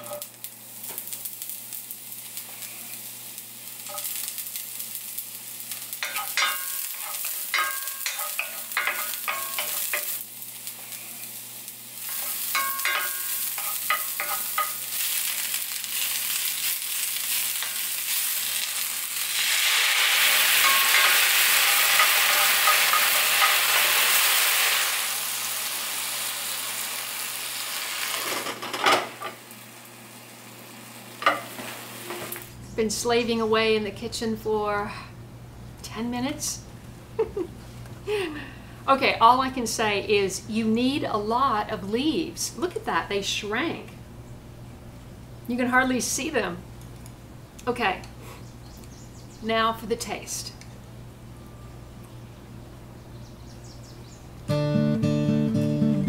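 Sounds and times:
vegetables sizzling in skillet: 0.0s - 32.7s.

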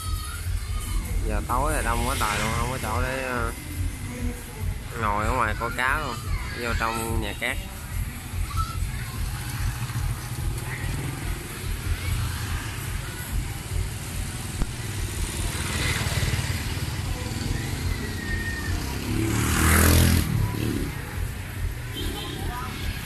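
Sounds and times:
motorbike traffic rumble: 0.0s - 23.0s
motorbike passing close by: 14.4s - 21.4s.

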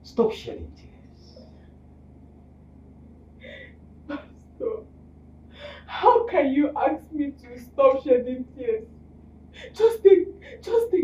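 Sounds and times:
woman sobbing: 3.4s - 4.8s, 9.6s - 11.0s
woman speaking: 4.1s - 4.8s, 5.8s - 8.8s, 9.6s - 11.0s.

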